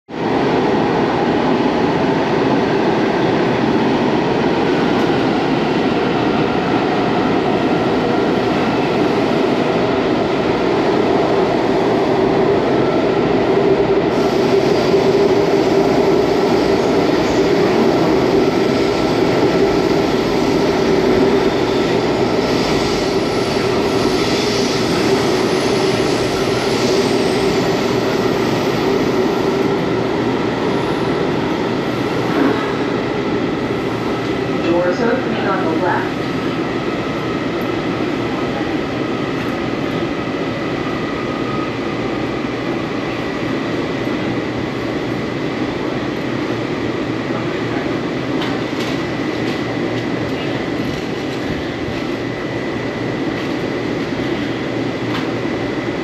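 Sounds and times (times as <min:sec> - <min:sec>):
train wheels rumbling on track: 0:00.1 - 0:56.0.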